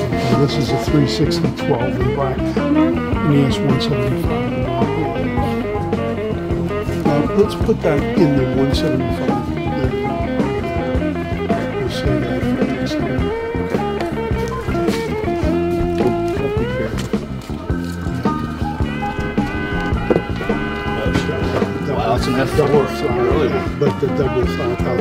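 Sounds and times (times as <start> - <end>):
blues-rock band music: 0.0 - 25.0
bent gliding guitar note: 17.6 - 23.8.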